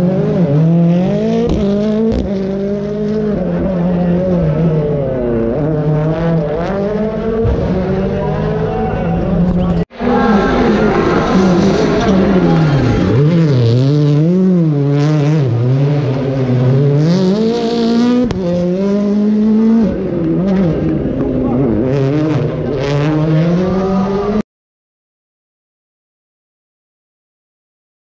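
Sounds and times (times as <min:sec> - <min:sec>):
rally car engine revving: 0:00.0 - 0:24.4.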